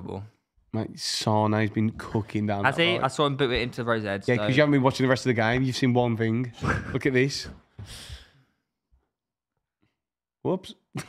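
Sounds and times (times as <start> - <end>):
man exhaling breathily: 7.8 - 8.4.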